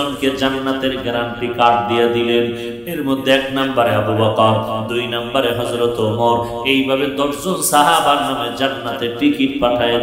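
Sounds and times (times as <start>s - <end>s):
man preaching in sing-song voice: 0.0s - 10.0s.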